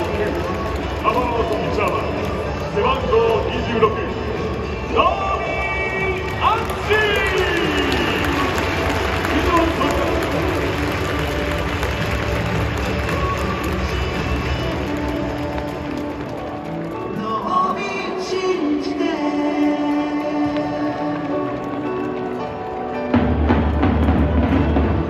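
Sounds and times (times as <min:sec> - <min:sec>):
crowd cheering and applauding: 0:00.0 - 0:22.9
music over stadium loudspeakers: 0:00.0 - 0:25.0.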